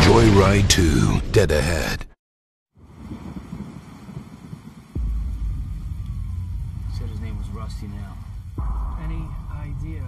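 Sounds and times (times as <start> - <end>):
deep low rumble: 2.8 - 10.0.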